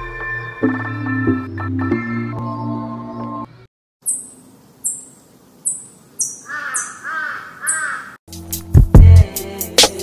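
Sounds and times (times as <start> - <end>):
crow cawing: 6.2 - 8.2
music with heavy drums: 8.3 - 10.0.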